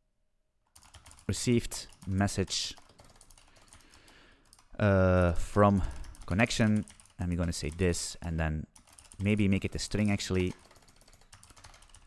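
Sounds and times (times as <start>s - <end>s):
computer keyboard typing: 0.7s - 4.8s, 5.7s - 12.0s.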